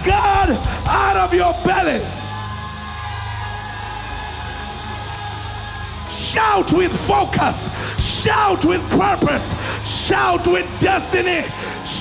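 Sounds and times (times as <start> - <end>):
church band sustained chord: 0.0 - 12.0.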